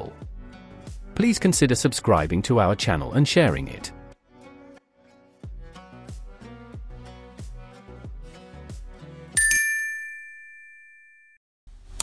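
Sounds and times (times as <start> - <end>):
bell-like ding: 9.4 - 11.4.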